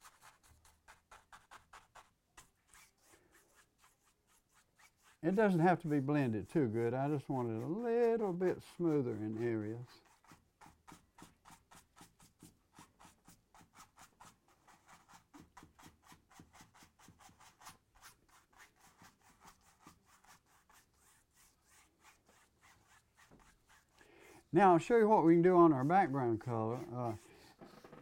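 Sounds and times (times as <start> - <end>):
paintbrush strokes on canvas: 0.0 - 28.0.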